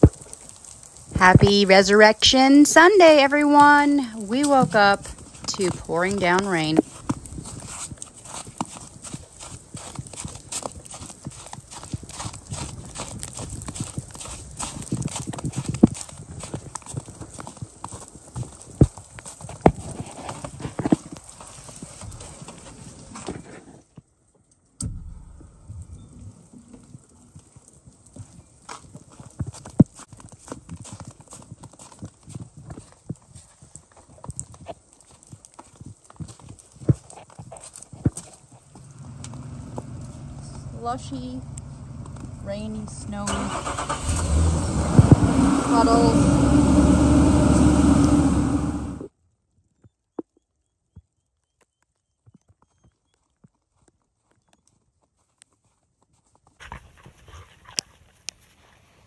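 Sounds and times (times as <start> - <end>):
rain pattering: 0.0 - 23.4, 24.8 - 48.3
footsteps in slushy snow: 3.5 - 23.8.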